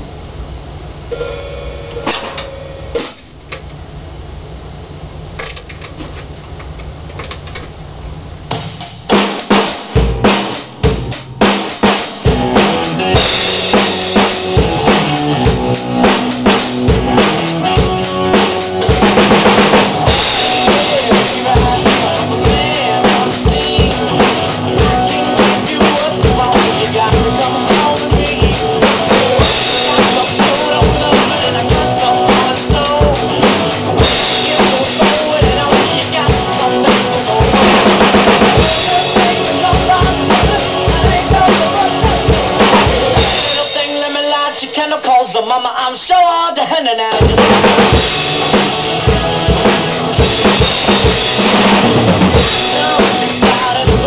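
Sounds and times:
low steady hum: 0:00.0 - 0:08.6
rock drum beat: 0:01.1 - 0:03.4, 0:08.4 - 0:45.2, 0:47.1 - 0:54.0
recorded song: 0:08.6 - 0:54.0.

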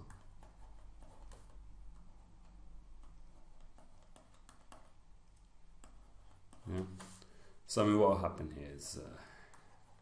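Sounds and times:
pen stylus tapping on tablet: 0:02.9 - 0:05.0.

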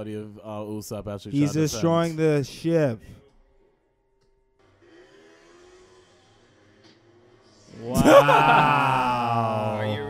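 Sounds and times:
faint soundtrack audio: 0:00.0 - 0:10.0
whirring rising tone: 0:04.6 - 0:07.9.

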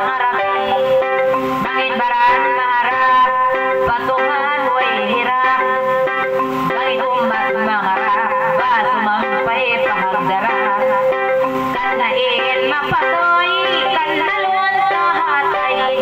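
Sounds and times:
keyboard drone notes: 0:00.0 - 0:16.0
woman singing into a microphone: 0:00.0 - 0:16.0.

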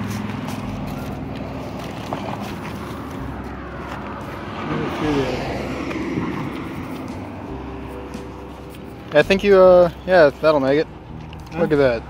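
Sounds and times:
background traffic noise: 0:00.0 - 0:12.0
vehicle passing by: 0:00.0 - 0:12.0.

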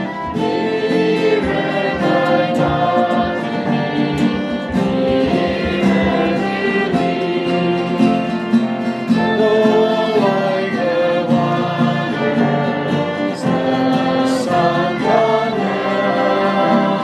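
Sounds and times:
people singing a worship song: 0:00.0 - 0:17.0
strummed acoustic guitar: 0:00.0 - 0:17.0.

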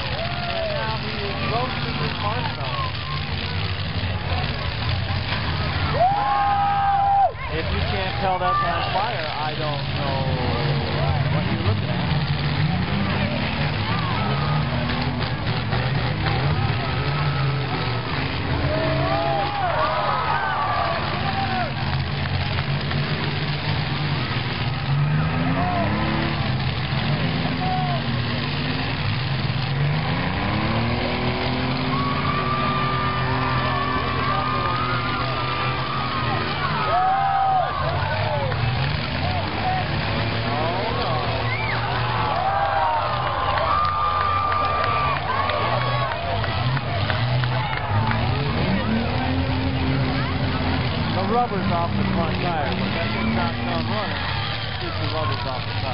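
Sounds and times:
car engines revving: 0:00.0 - 0:55.9
crowd voices and shouts: 0:00.0 - 0:55.9.

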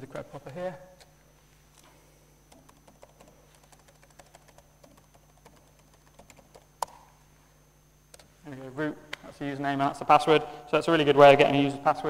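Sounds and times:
steady low hum: 0:00.0 - 0:12.0
laptop keyboard typing: 0:02.5 - 0:07.0.

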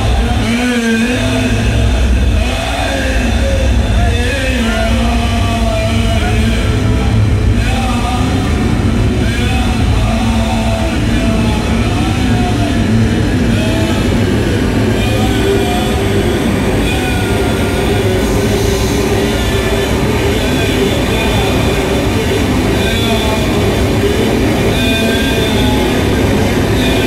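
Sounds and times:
noise music drone: 0:00.0 - 0:27.0.

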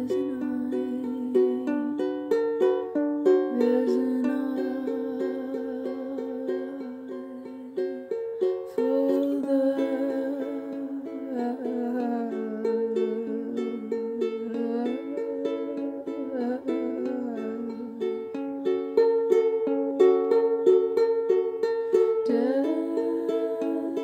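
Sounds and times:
person humming a melody: 0:00.0 - 0:19.4, 0:21.8 - 0:24.0
plucked string instrument: 0:00.0 - 0:24.0.

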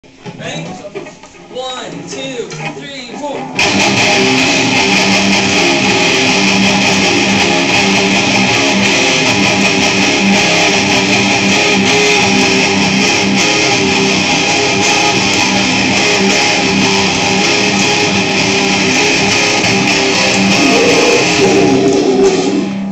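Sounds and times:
loud electric guitars riffing: 0:00.0 - 0:22.9.

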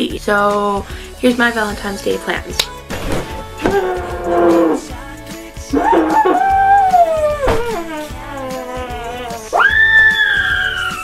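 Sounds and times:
background music: 0:00.0 - 0:11.0
voice holding long notes: 0:03.6 - 0:05.0, 0:05.7 - 0:11.0.

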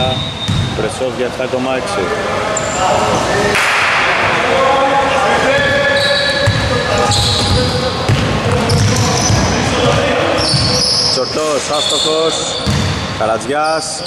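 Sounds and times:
sneakers squeaking: 0:00.0 - 0:00.9, 0:02.5 - 0:03.6, 0:05.4 - 0:14.0
basketball bouncing: 0:00.1 - 0:00.8, 0:06.4 - 0:10.7, 0:12.6 - 0:13.1.

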